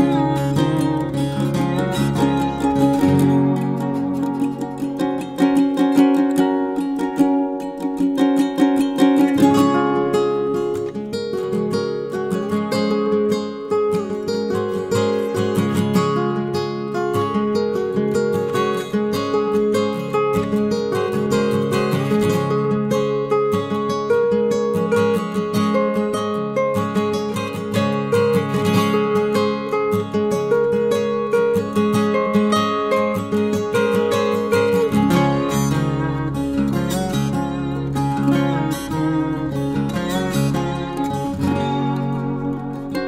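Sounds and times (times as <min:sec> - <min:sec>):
ukulele plucked and strummed: 0:00.0 - 0:43.0.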